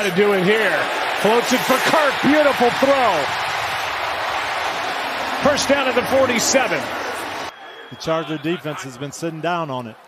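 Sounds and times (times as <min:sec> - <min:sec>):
stadium crowd cheering: 0:00.0 - 0:10.0
commentator speaking: 0:05.4 - 0:07.0, 0:07.8 - 0:10.0.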